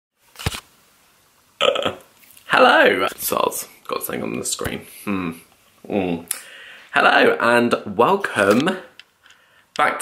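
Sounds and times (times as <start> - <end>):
man's non-word vocal noise: 1.6 - 9.0.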